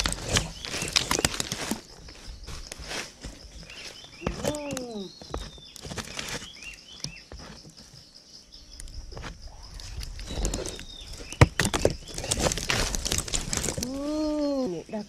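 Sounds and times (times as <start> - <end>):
rustling in dry leaf litter: 0.0 - 6.8, 9.6 - 14.9
small knocks and clicks: 2.7 - 8.0.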